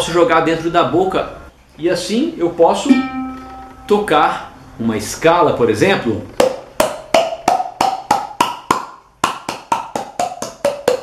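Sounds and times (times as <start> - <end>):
hollow pitched hand claps: 6.4 - 11.0.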